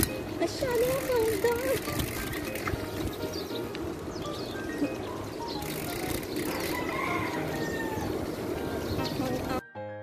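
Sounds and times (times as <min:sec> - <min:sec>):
street and riding noise: 0:00.0 - 0:09.8.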